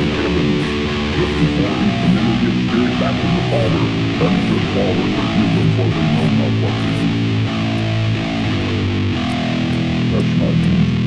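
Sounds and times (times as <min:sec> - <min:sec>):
heavy rock guitar and bass riff: 0:00.0 - 0:11.0.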